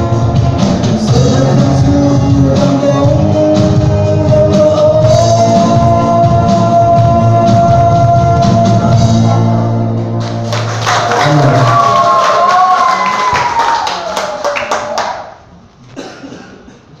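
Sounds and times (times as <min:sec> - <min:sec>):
audience applause: 0:10.2 - 0:15.4
person cheering: 0:11.0 - 0:15.1.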